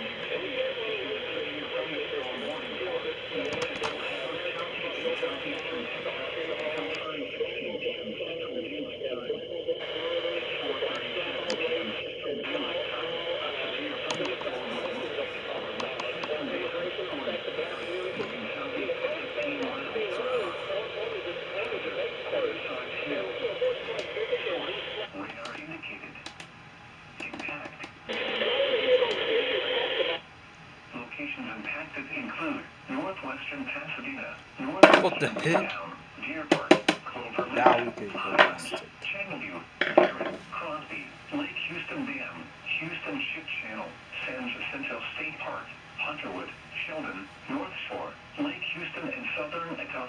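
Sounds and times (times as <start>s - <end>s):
voice from television speaker: 0.0s - 26.4s, 27.2s - 30.2s, 30.9s - 50.0s.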